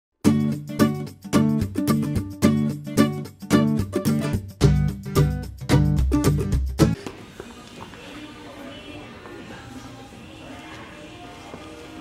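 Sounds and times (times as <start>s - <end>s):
quiet background music: 5.7s - 12.0s.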